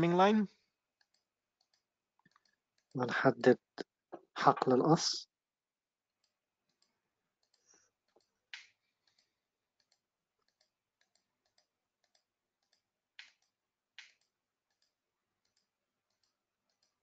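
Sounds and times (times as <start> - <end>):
faint computer mouse clicks: 6.2 - 17.0.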